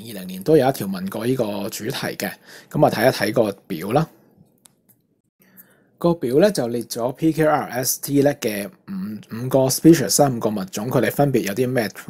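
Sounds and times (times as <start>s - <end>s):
man narrating: 0.0s - 4.1s, 6.0s - 12.0s
soft in-breath: 2.4s - 2.7s, 5.4s - 6.0s.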